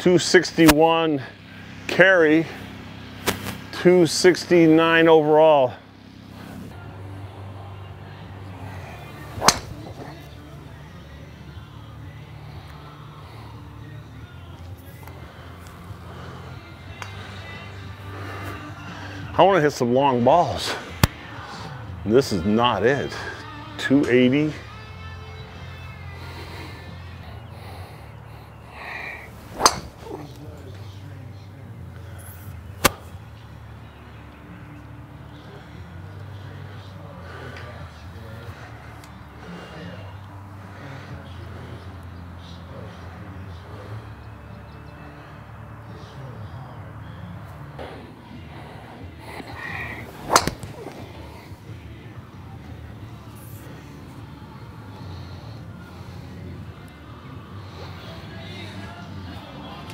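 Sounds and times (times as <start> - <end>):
swish of golf swing: 3.2 - 3.6, 9.2 - 10.2, 29.4 - 30.3, 50.0 - 51.2
golf club striking ball: 9.3 - 10.2, 29.5 - 30.4, 32.8 - 33.0, 50.2 - 51.0.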